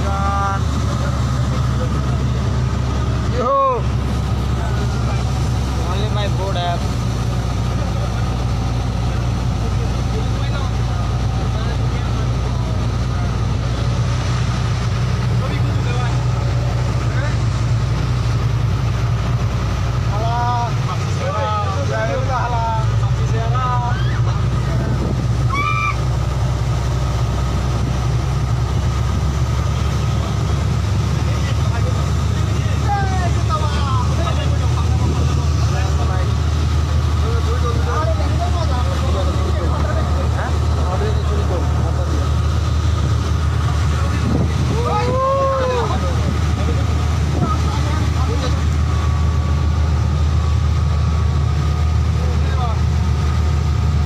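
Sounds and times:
boat engine drone: 0.0s - 54.0s.

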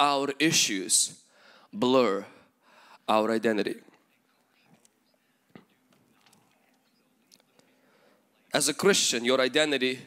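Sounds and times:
faint breathing: 1.2s - 3.1s, 7.5s - 8.4s.

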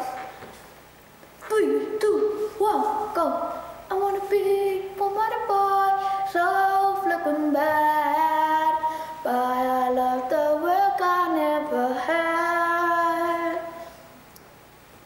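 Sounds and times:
boy singing: 1.5s - 13.9s.

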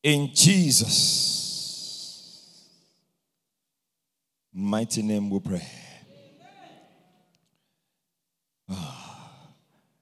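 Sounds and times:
man speaking into a microphone: 0.0s - 2.6s, 4.5s - 6.4s.

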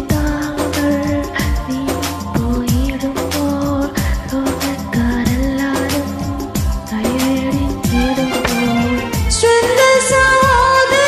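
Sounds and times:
karaoke backing track: 0.0s - 11.0s
woman singing: 0.0s - 11.0s.

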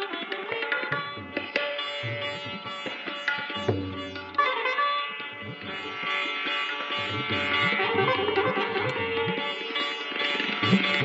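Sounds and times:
sitar melody: 0.0s - 11.0s.

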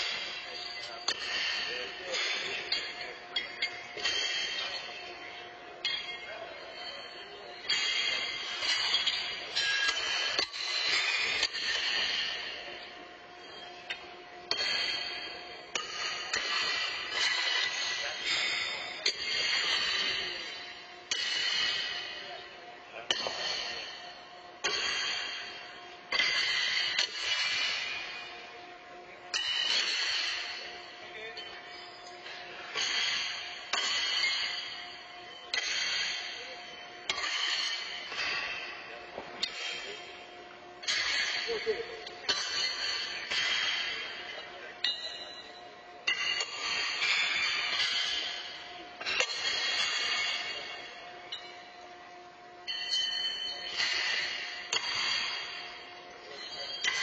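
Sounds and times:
horseshoes clanging against stakes: 0.0s - 28.4s, 29.3s - 51.8s, 52.7s - 57.0s.

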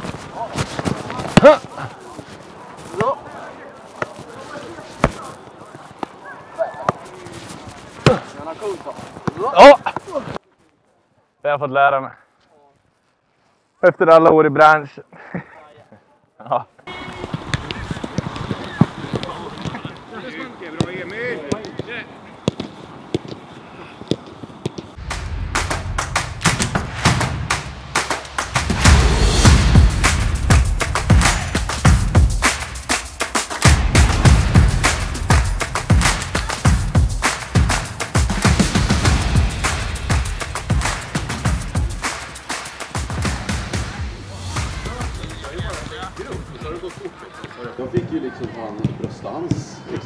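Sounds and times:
boot kicking football: 0.0s - 5.4s, 6.0s - 8.4s, 17.0s - 20.1s
voices and chatter: 0.0s - 12.9s, 13.9s - 24.0s, 40.4s - 50.0s
music with strong low beat: 25.0s - 47.0s.

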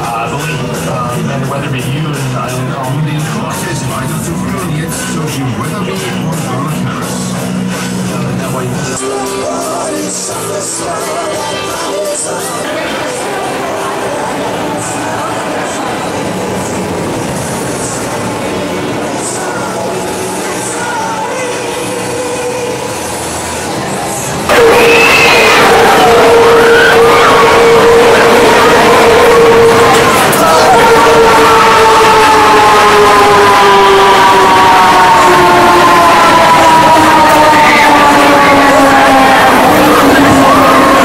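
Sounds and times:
background music: 0.0s - 41.0s
roller coaster rumbling on track: 0.0s - 41.0s
voices: 0.0s - 41.0s.

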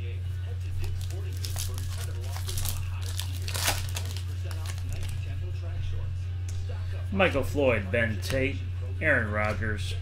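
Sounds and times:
steady low hum: 0.0s - 10.0s
wrapper tearing and crinkling: 0.8s - 5.3s.

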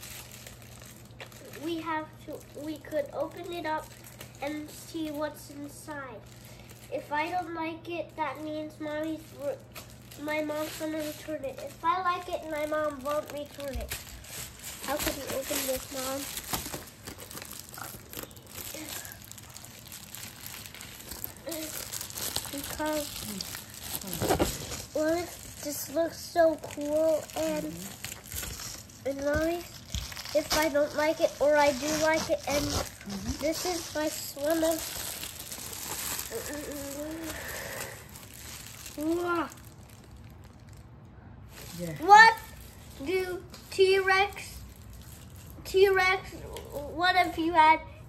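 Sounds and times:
plastic bag crinkling: 0.0s - 5.4s, 6.2s - 7.4s, 8.4s - 40.9s, 41.5s - 45.6s
child humming: 31.9s - 33.4s, 36.3s - 38.1s.

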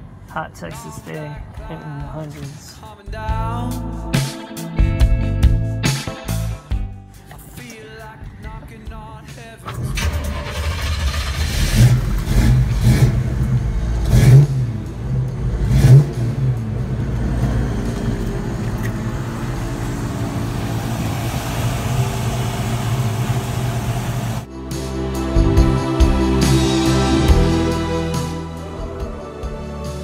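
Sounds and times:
engine starting and revving: 9.6s - 24.5s
engine idling: 9.7s - 24.5s.

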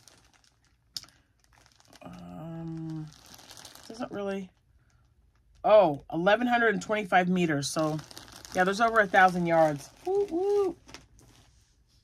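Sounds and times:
packaging crinkling and rustling: 0.0s - 6.0s, 7.5s - 12.0s.

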